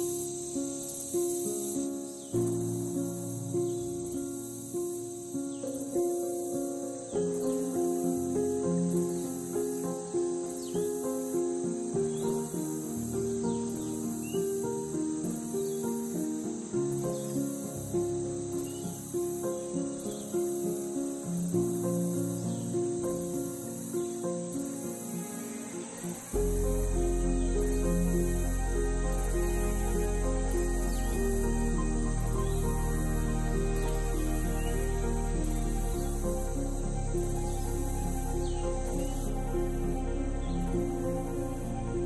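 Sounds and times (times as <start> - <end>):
crickets chirping: 0.0 - 42.0
plucked-string background music: 0.0 - 42.0.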